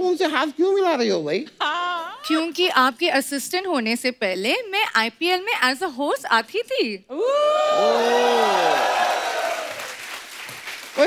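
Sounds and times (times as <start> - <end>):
audience applauding: 7.8 - 11.0.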